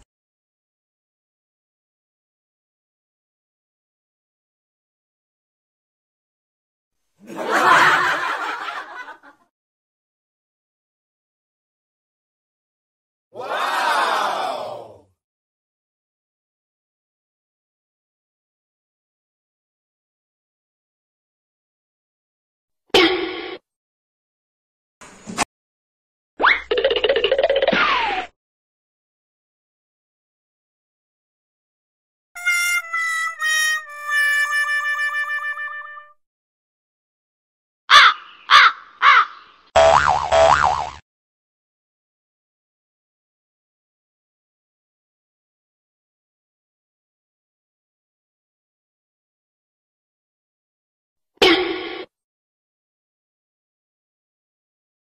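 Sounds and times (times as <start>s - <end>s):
harsh crow-like caws: 37.9s - 39.4s
wobbling cartoon tone: 39.8s - 41.0s.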